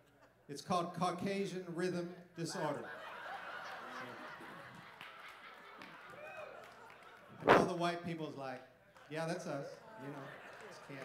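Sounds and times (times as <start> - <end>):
congregation laughing: 2.6 - 7.5.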